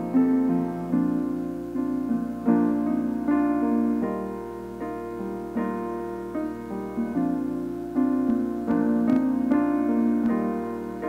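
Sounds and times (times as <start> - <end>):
slow piano chords: 0.0 - 11.0.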